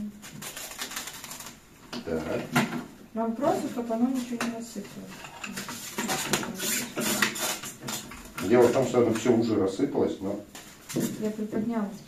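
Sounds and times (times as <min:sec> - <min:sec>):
plastic wrap crinkling: 0:00.0 - 0:02.3.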